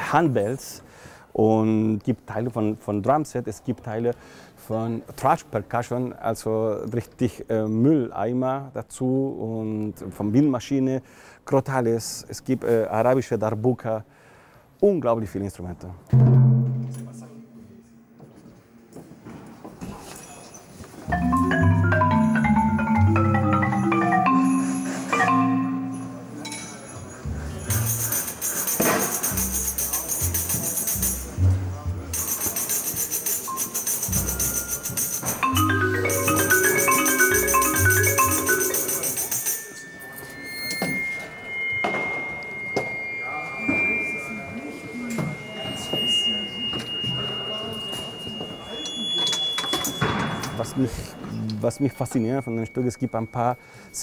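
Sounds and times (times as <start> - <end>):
marimba melody: 16.2 - 18.1, 21.1 - 26.9, 33.4 - 40.3
low bass notes: 16.2 - 18.2
tambourine jingles: 26.4 - 31.5, 32.1 - 42.2
crotales ringing: 33.5 - 50.8.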